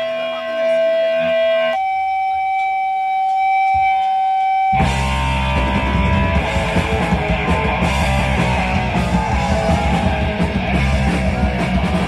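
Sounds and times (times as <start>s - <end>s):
punk band playing live: 0.0s - 1.8s, 4.7s - 12.0s
electric guitar feedback whine: 0.0s - 12.0s.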